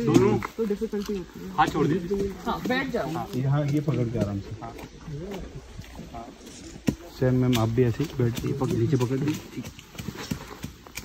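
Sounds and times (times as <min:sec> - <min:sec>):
footsteps on rocky trail: 0:00.0 - 0:11.0.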